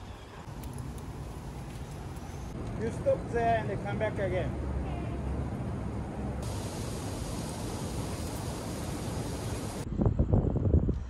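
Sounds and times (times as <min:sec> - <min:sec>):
low outdoor rumble: 0:00.1 - 0:10.9.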